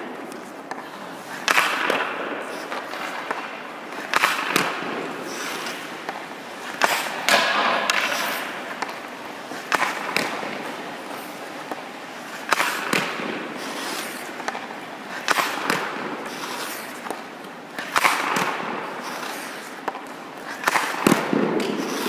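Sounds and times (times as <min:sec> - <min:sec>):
hockey stick striking puck: 0:00.0 - 0:22.0
puck knocking: 0:00.0 - 0:22.0.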